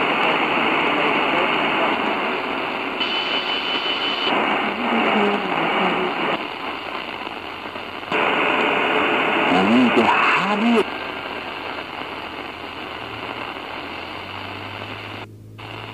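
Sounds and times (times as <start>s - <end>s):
voice on radio: 0.0s - 13.9s
radio static hiss: 0.0s - 15.9s.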